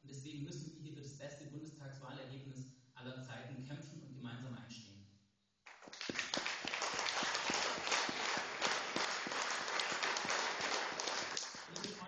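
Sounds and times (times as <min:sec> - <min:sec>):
audience applauding: 0:05.7 - 0:12.0.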